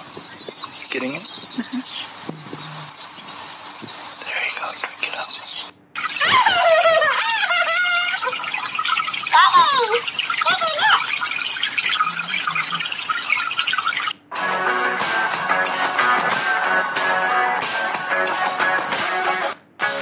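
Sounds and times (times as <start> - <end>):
high-pitched voices: 0.2 - 3.3, 4.2 - 14.2
laughter: 1.6 - 2.0, 6.2 - 8.6
strummed guitar music: 14.4 - 20.0.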